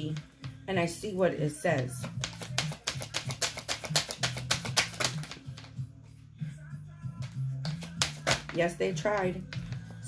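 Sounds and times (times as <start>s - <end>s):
background music with low notes: 0.0s - 10.0s
cards shuffled by hand: 1.8s - 5.8s, 7.2s - 10.0s.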